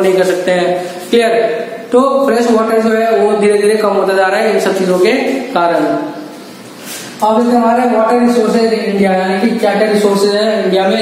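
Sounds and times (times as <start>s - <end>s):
man lecturing: 0.0s - 11.0s.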